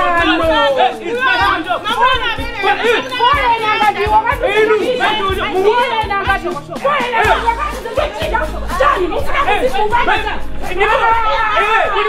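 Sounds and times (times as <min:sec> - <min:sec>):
background music with low beat: 0:00.0 - 0:12.0
voices shouting excitedly: 0:00.0 - 0:12.0.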